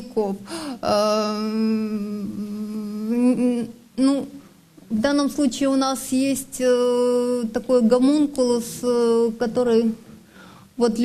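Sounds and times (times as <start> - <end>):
woman humming hesitation sound: 1.0 - 4.2.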